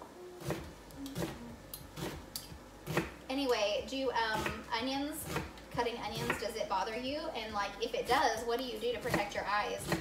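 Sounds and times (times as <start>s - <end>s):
knife chopping on wooden board: 2.0s - 2.2s, 2.8s - 3.2s, 4.3s - 4.6s, 5.2s - 6.5s, 9.0s - 10.0s.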